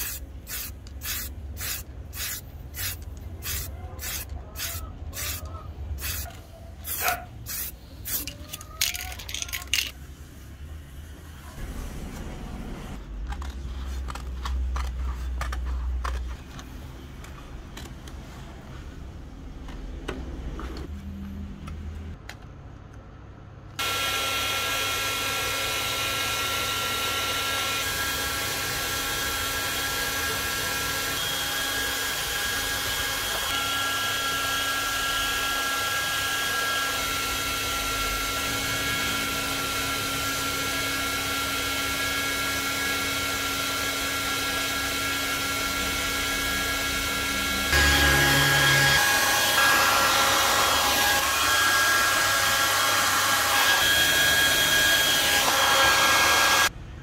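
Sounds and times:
hair dryer running: 23.8s - 56.7s.

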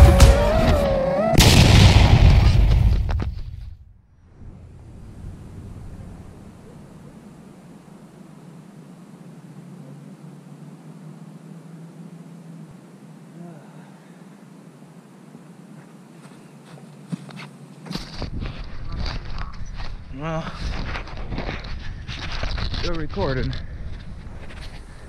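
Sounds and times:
drone motors whining: 0.0s - 2.6s
drone crashing: 0.0s - 6.6s
faint low hum: 4.0s - 25.0s
rushing wind: 18.0s - 25.0s.

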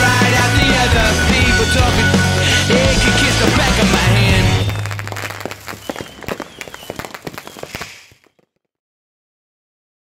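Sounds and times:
rock song: 0.0s - 5.4s
fireworks crackling and popping: 0.0s - 8.7s.

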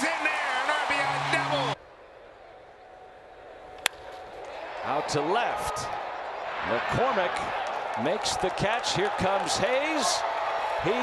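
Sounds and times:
ballpark background noise: 0.0s - 11.0s.

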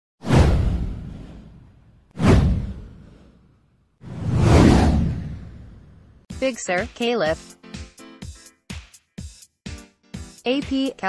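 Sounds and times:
whoosh sweeping down with heavy bass: 4.0s - 6.2s.

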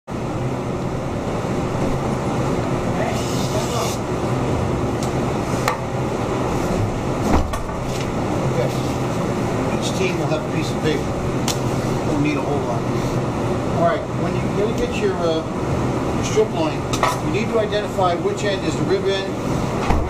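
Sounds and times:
room hum: 0.1s - 20.0s.

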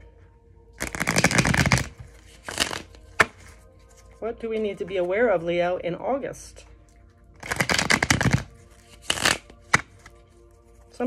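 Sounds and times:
cards being shuffled: 0.8s - 5.0s, 7.4s - 11.0s.

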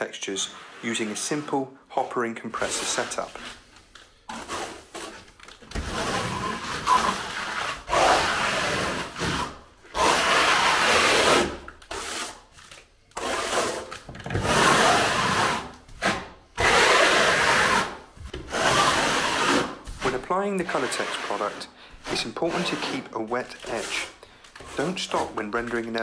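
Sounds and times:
float scraping render on wall: 0.0s - 26.0s.

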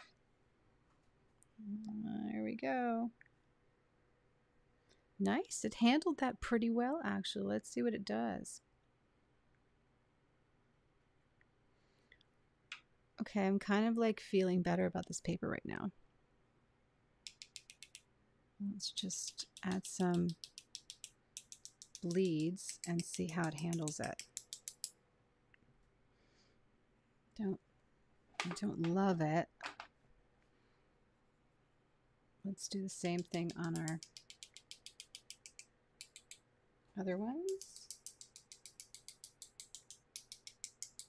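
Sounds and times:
paintbrush tapping clicks: 17.2s - 18.0s, 19.2s - 25.0s, 33.1s - 36.4s, 37.5s - 41.0s.

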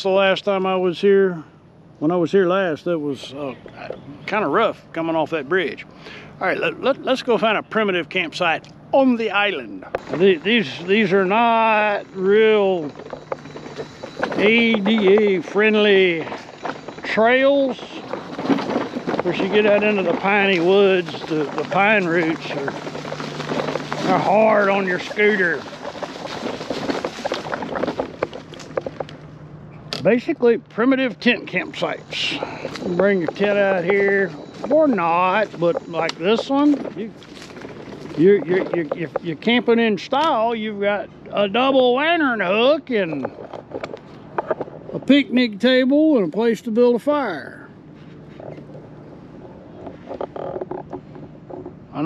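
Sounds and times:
faint low hum: 0.0s - 52.0s
leaves crackling under tyres: 10.0s - 29.4s, 31.3s - 39.7s.

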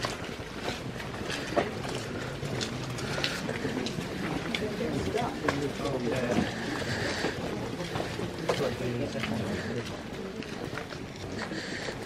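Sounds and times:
light footsteps: 0.0s - 12.0s
people talking: 3.0s - 11.7s.

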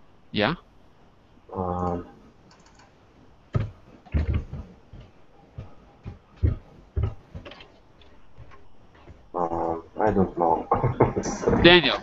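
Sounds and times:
keyboard typing: 2.5s - 2.9s, 6.4s - 9.8s.

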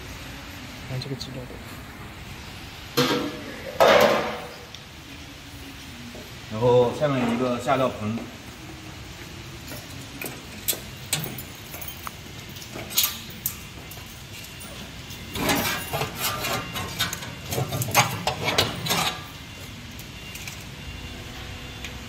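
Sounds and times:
metal clinking and rattling: 9.6s - 19.3s.

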